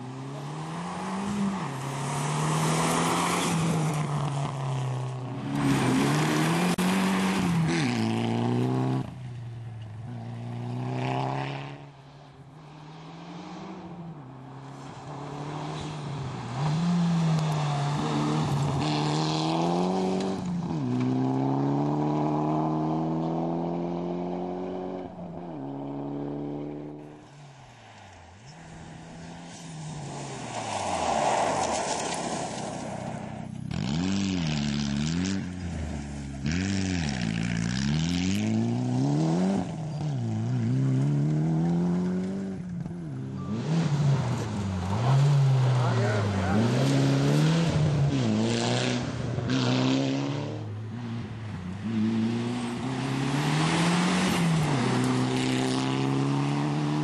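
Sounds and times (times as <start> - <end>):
rally car engine at full throttle: 0.0 - 27.4, 31.6 - 57.0.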